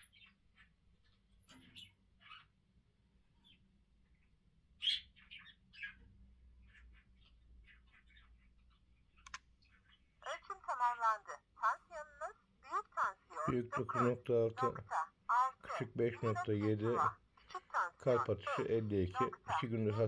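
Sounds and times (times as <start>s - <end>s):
sharp click: 9.2s - 9.5s.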